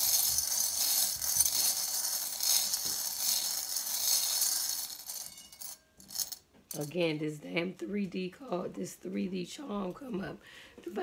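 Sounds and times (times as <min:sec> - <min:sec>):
metal charms jingling in bowl: 0:00.0 - 0:06.9.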